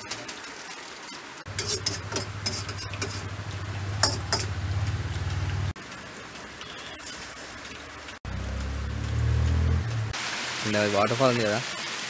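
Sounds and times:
metal ladle scraping a wok: 1.5 - 3.4.

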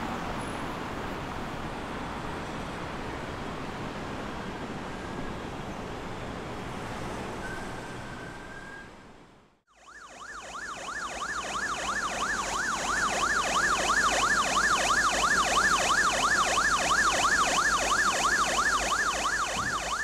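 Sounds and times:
emergency siren yelping: 9.7 - 20.0.

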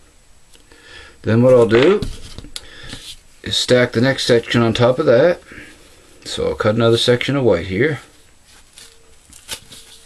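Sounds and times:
handling noises: 8.0 - 10.0.

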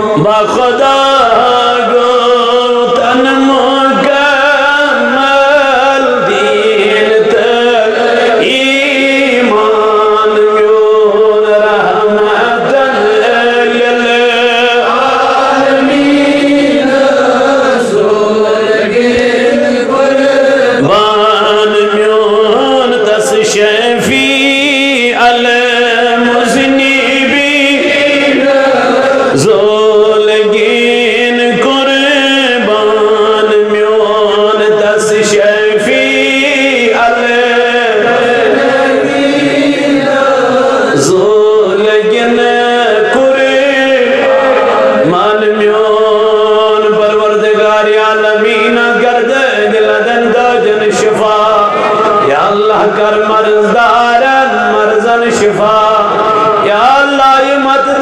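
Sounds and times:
man chanting melodically: 0.0 - 58.0.

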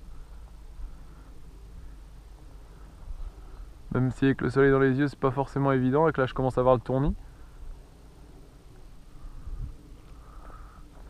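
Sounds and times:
wind rumble on microphone: 9.1 - 11.0.

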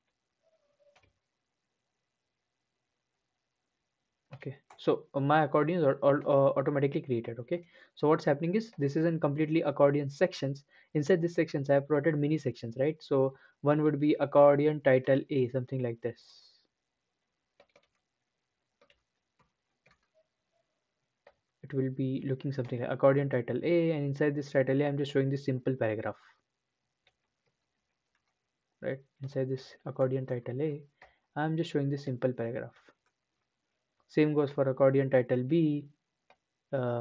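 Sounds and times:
computer mouse clicks: 0.8 - 1.2, 17.5 - 18.1, 18.8 - 20.3, 27.0 - 28.4.

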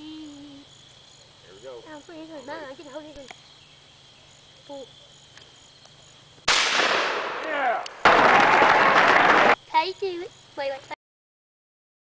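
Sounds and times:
shotgun shot: 6.5 - 9.6.

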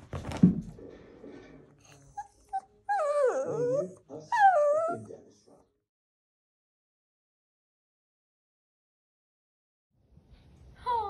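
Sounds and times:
dog whining: 1.9 - 5.1.

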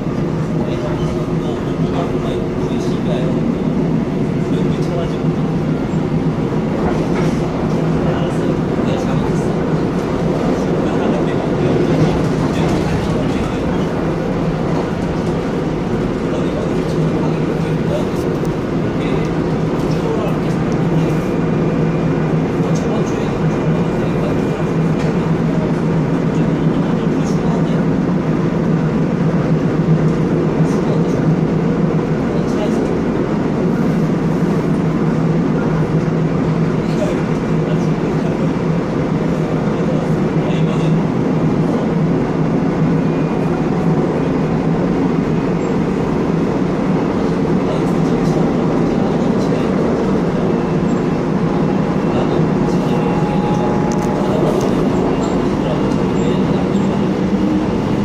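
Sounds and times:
train wheels rumbling on rails: 0.0 - 58.0
low motor hum: 50.9 - 58.0.

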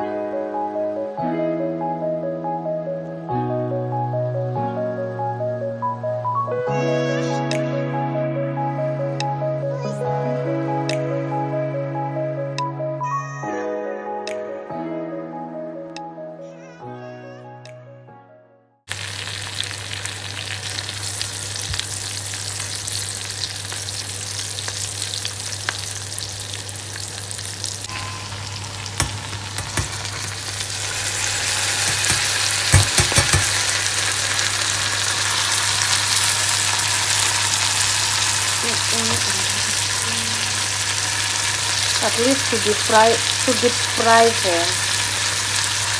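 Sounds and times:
onions sizzling in oil: 18.9 - 45.9
knocks against the pan: 29.0 - 30.1, 31.8 - 33.6.

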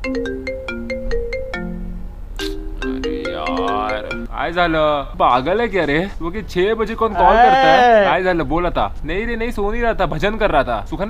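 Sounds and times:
mobile phone ringtone melody: 0.0 - 4.3.

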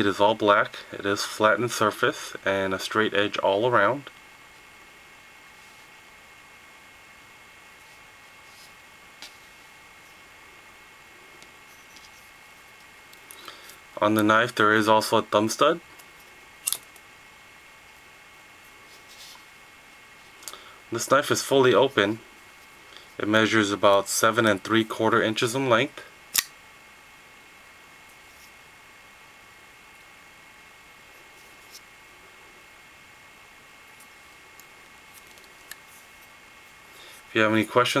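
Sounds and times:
faint steady hiss: 0.0 - 38.0
folding knife clicks: 16.6 - 16.8, 26.3 - 26.5.

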